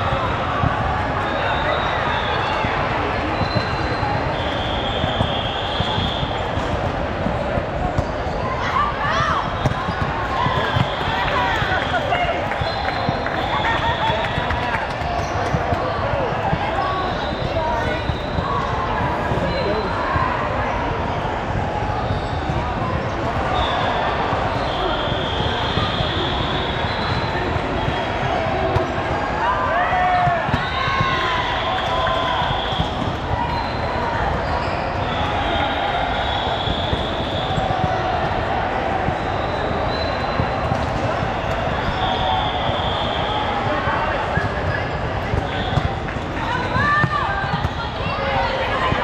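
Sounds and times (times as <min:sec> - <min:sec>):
many overlapping voices: 0:00.0 - 0:49.0
volleyballs hit and bouncing: 0:00.0 - 0:49.0.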